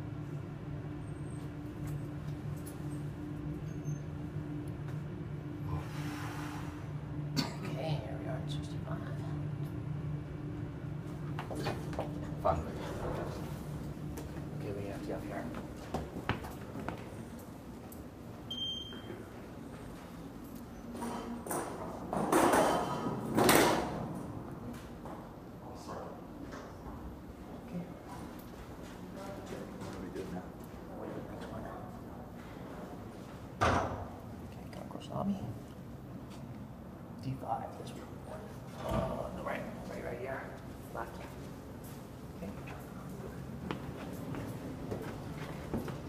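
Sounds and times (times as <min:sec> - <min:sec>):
elevator car humming: 0:00.0 - 0:27.7.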